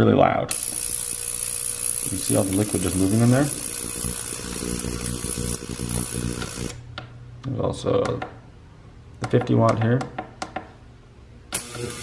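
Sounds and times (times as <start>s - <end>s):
ultrasonic cleaner buzzing: 0.5s - 6.8s, 11.6s - 12.0s.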